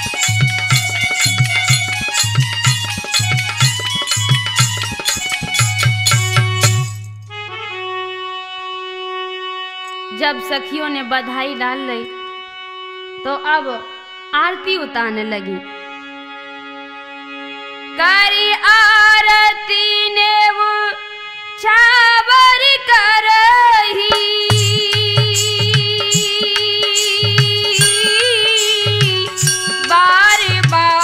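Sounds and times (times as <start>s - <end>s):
woman singing folk song: 18.0s - 21.0s, 21.6s - 31.0s.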